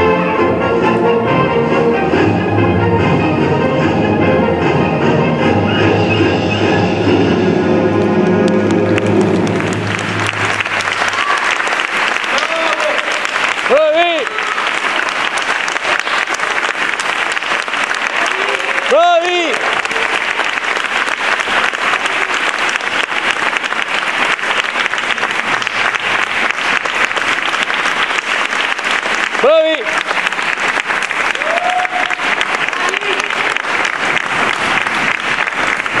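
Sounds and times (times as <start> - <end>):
audience applauding: 7.8 - 36.0
shouts of approval: 11.0 - 14.7, 18.2 - 20.4, 31.3 - 33.5.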